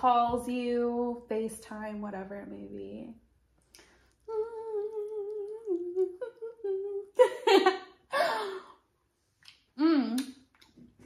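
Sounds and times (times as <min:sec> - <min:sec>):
woman humming: 0:04.3 - 0:07.2, 0:09.8 - 0:10.2.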